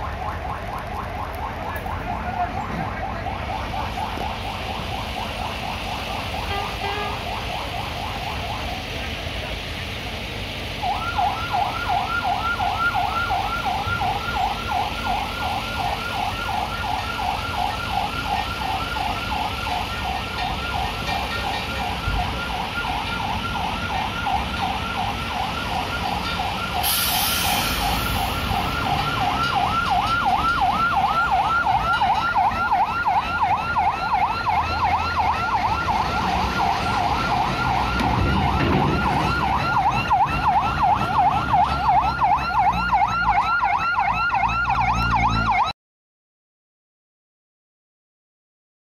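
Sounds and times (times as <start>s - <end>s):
reversing warning chirper: 10.8s - 33.7s
short hiss: 26.8s - 28.4s.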